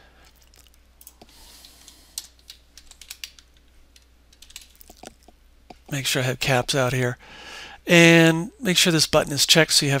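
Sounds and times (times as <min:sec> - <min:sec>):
low steady hum: 0:00.0 - 0:10.0
computer keyboard typing: 0:01.0 - 0:05.3.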